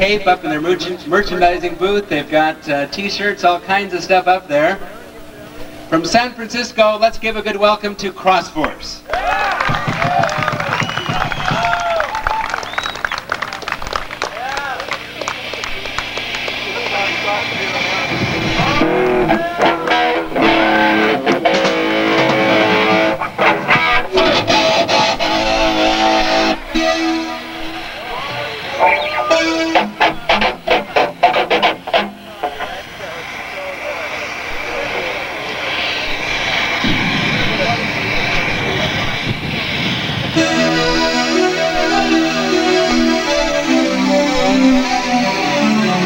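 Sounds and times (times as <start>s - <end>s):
crowd cheering and whistling: 9.1s - 46.0s
low drone: 12.0s - 46.0s
electric guitar chords: 13.6s - 46.0s
wash of noise: 15.0s - 45.6s.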